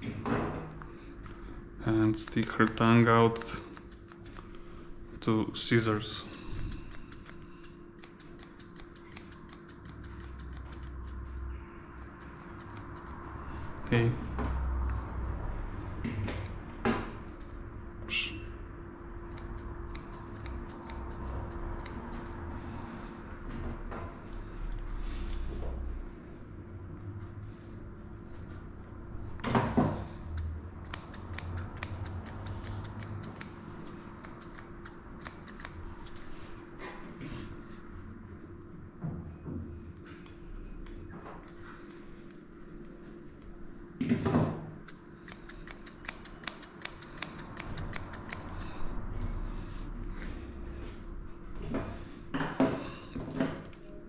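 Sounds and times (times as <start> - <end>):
scissors snipping: 2.0 - 4.5, 6.2 - 11.2, 12.0 - 13.2, 19.3 - 22.4, 30.3 - 36.3, 44.8 - 49.4.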